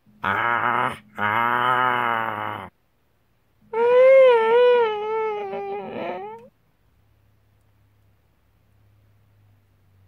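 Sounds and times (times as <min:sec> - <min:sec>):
high wavering whimper: 0:03.6 - 0:06.5.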